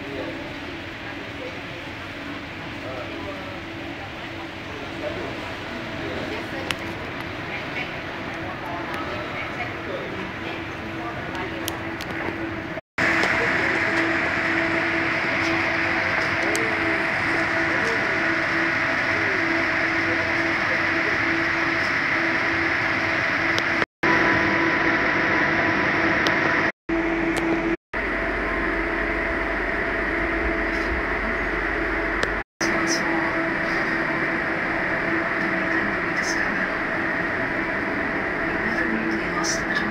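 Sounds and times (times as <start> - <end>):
rail station hum and hiss: 0.0 - 39.9
train carriage rumble: 0.0 - 39.9.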